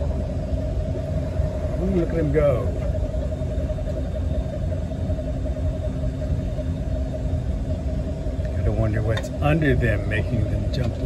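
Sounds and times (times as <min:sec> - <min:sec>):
boat motor running: 0:00.0 - 0:11.0.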